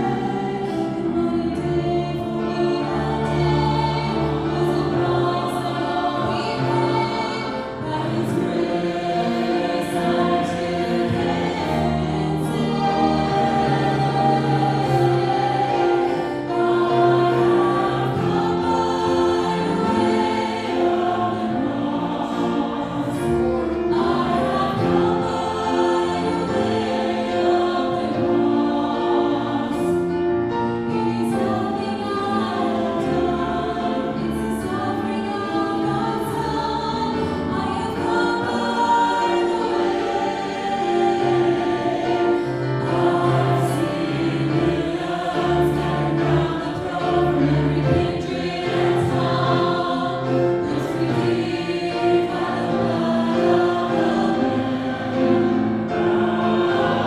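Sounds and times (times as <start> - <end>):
choir singing gospel: 0.0 - 57.0.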